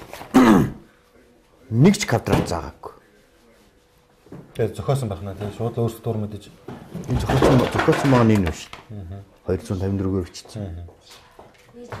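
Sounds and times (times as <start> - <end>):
man speaking: 1.6 - 3.1, 4.6 - 11.0.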